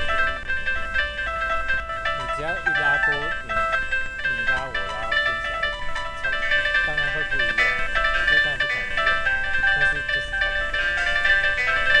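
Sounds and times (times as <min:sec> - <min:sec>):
synthesized tones stepping: 0:00.0 - 0:12.0.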